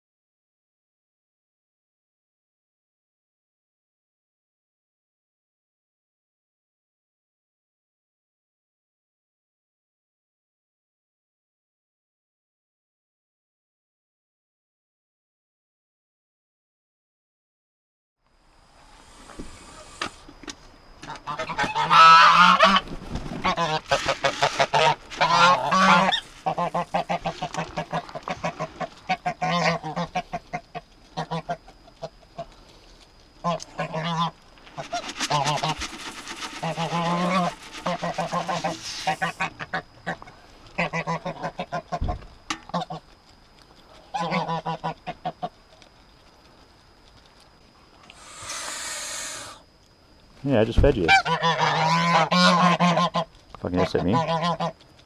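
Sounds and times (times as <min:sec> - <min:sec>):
geese honking: 0:21.0 - 0:32.6, 0:33.4 - 0:43.0, 0:44.0 - 0:45.5, 0:48.1 - 0:49.6, 0:51.0 - 0:54.8.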